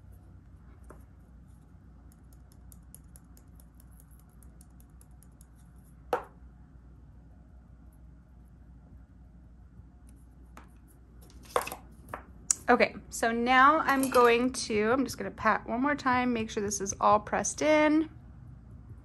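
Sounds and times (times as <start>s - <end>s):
hand patting board: 6.2s - 6.4s.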